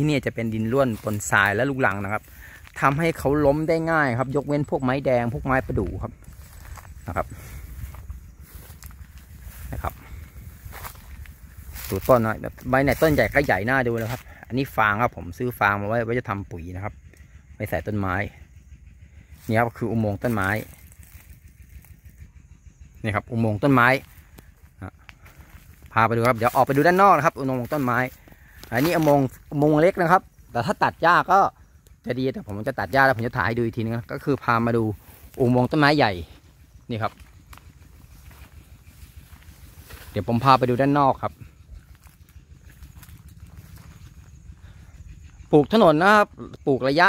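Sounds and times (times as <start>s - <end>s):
footsteps through tall grass: 0.0s - 14.5s, 20.2s - 22.2s, 23.8s - 30.0s, 34.0s - 45.4s
low uneven rumble: 0.0s - 46.6s.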